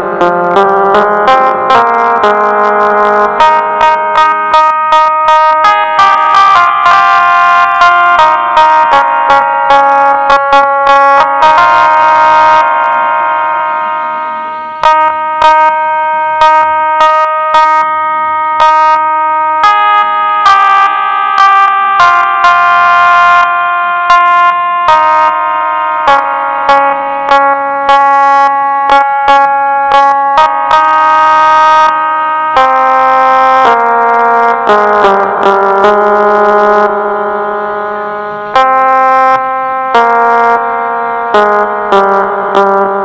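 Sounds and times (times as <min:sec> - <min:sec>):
electronic keyboard melody: 0:00.0 - 0:43.0.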